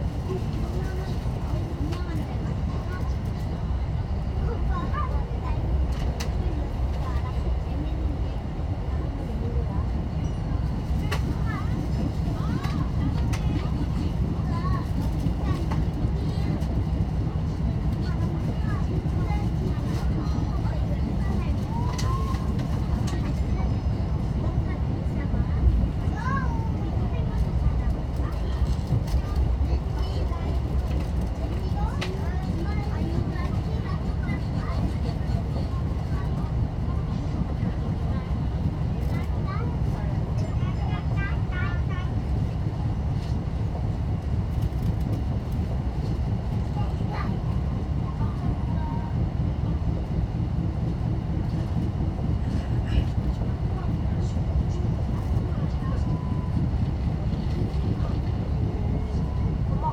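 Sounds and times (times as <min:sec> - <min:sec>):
train rumbling along track: 0:00.0 - 0:59.9.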